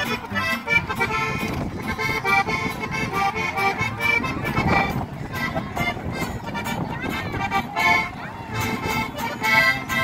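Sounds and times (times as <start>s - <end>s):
lead melody line: 0.0s - 10.0s
plucked upright bass: 0.0s - 10.0s
strummed acoustic guitar: 0.0s - 10.0s.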